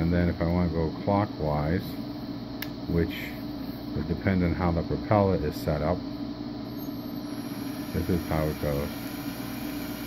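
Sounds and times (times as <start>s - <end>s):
electric drill motor humming: 6.7s - 10.0s.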